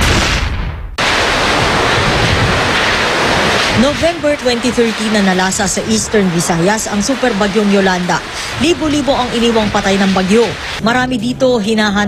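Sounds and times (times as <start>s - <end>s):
strong wind on microphone: 1.0s - 10.8s.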